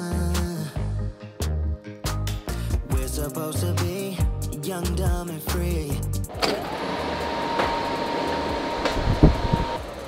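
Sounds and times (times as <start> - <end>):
ventilation hum: 6.3 - 10.0
thin high whine: 7.2 - 9.9.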